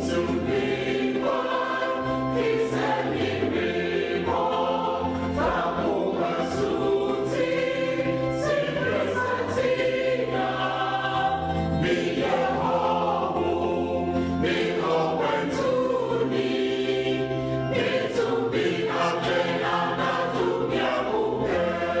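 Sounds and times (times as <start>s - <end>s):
choir singing a hymn: 0.0s - 22.0s.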